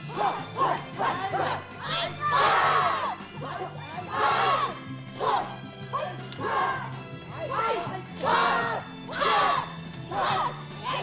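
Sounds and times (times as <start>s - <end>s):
music with steady bass: 0.0s - 11.0s
group shouting together: 0.1s - 11.0s.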